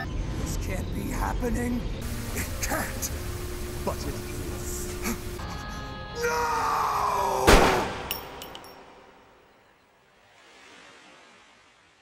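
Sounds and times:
low hiss: 2.0s - 5.4s
tail of a loud crash: 7.5s - 8.4s
faint high-pitched clinks: 8.1s - 9.1s.

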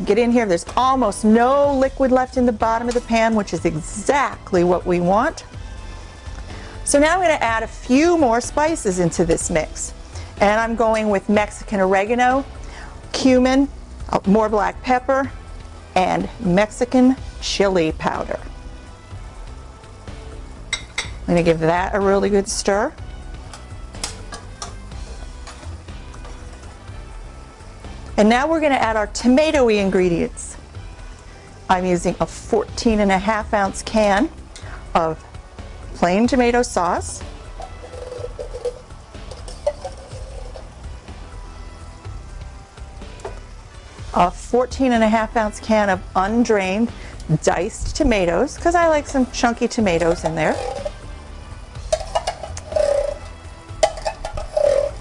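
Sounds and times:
background music: 0.0s - 55.0s
metal spoon scraping a pot: 37.5s - 40.8s, 49.9s - 51.1s, 51.8s - 55.0s.

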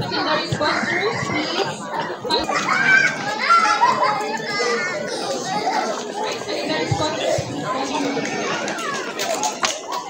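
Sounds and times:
children calling and chattering: 0.0s - 10.0s
crowd talking: 0.0s - 10.0s.

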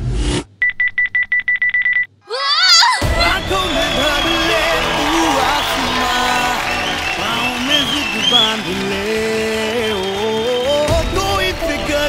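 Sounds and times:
music: 3.0s - 12.0s.

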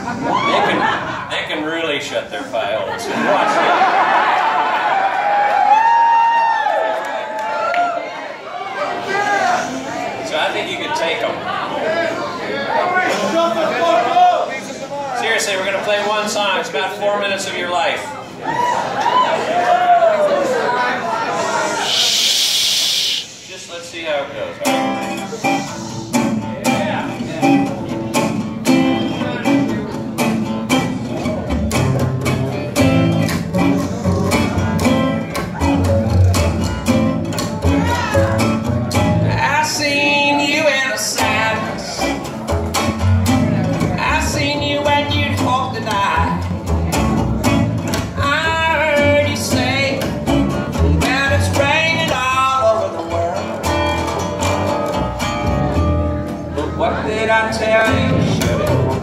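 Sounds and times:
plucked acoustic guitar: 24.6s - 59.0s
upright bass: 24.6s - 59.0s.

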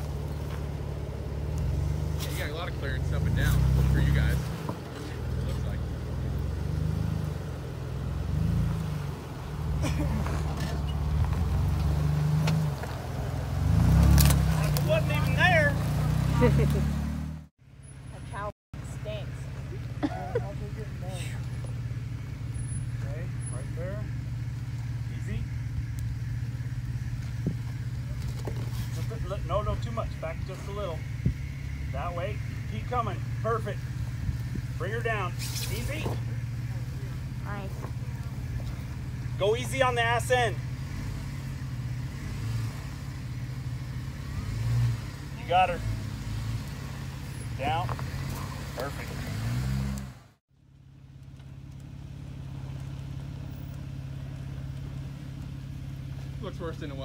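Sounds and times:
voices calling: 0.0s - 49.9s
car engine idling hum: 0.0s - 57.0s
car engine running at crawling speed: 0.0s - 57.0s.

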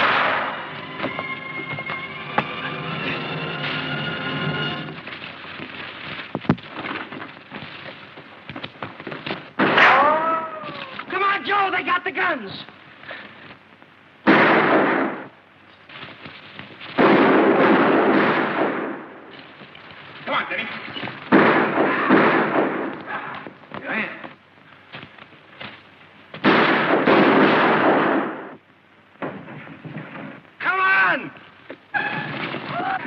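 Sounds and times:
loud gunshots with echo: 0.0s - 0.6s, 14.2s - 15.3s, 17.0s - 19.1s, 21.3s - 23.0s, 26.4s - 28.6s
people shouting: 9.8s - 11.0s.

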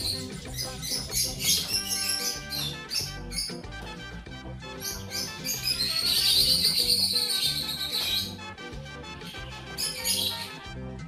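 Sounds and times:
birds chirping: 0.0s - 10.8s
background music: 0.0s - 11.0s.

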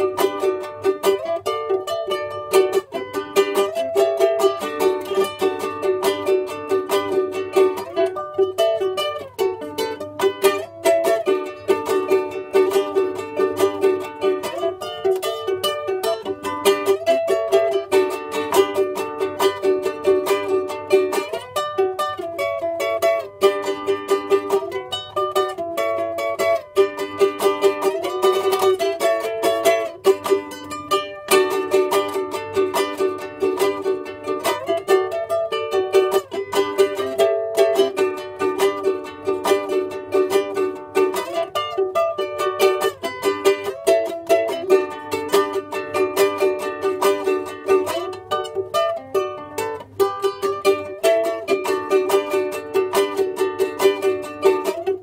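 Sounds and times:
ukulele strumming and picking: 0.0s - 55.0s.

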